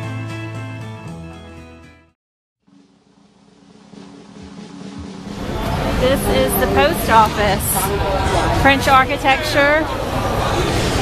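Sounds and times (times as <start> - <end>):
background ambience: 2.7 - 11.0.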